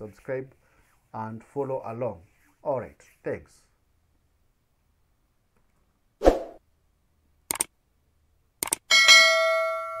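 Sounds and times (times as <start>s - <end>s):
mouse clicks: 7.5s - 7.7s, 8.6s - 8.8s
bell ding: 8.9s - 10.0s.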